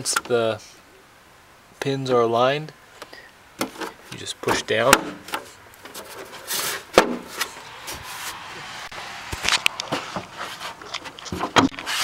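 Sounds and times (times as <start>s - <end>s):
plastic rubbing: 3.6s - 8.4s, 9.4s - 12.0s.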